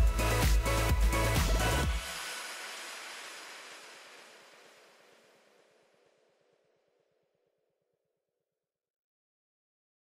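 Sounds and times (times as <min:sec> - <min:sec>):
electronic background music: 0:00.0 - 0:05.7.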